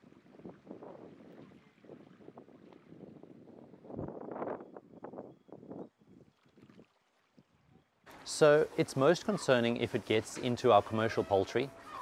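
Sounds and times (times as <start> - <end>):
wind: 0.0 - 12.0.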